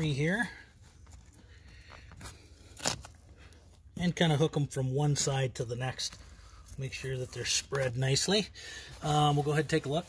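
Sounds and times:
hook-and-loop strap crackle: 0:00.8 - 0:03.9.

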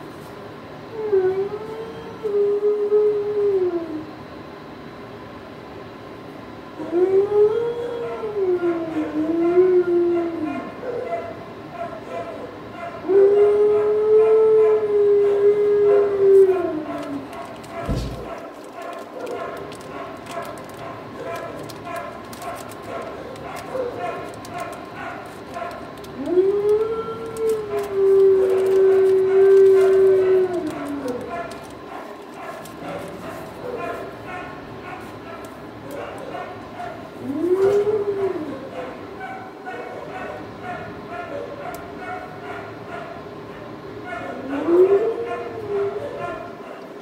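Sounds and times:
dog howling: 0:00.9 - 0:04.1, 0:06.8 - 0:43.2, 0:44.0 - 0:47.0
dogs barking: 0:10.4 - 0:26.3, 0:27.4 - 0:47.0.

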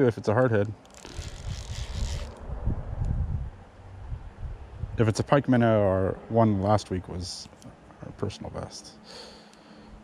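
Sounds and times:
wind buffeting microphone: 0:01.1 - 0:05.2.

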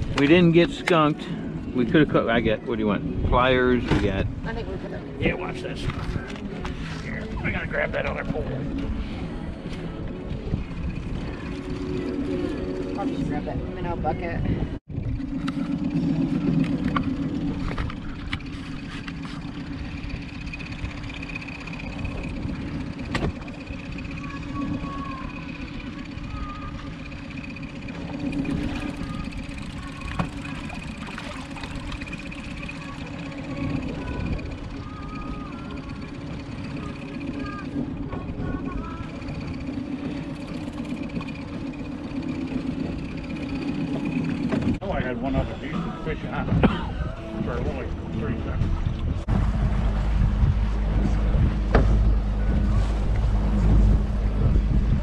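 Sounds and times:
outboard motor humming: 0:00.0 - 0:55.0.

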